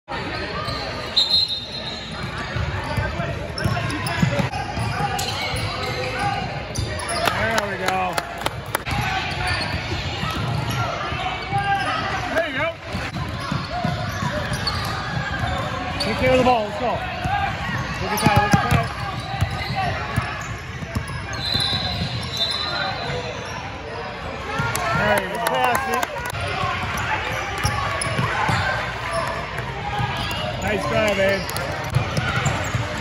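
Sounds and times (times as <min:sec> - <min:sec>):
chatter in echoing gym: 0:00.1 - 0:33.0.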